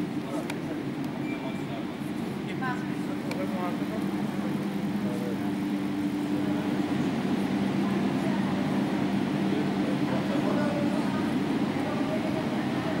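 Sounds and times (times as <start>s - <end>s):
indistinct chatter of voices: 0.0s - 13.0s.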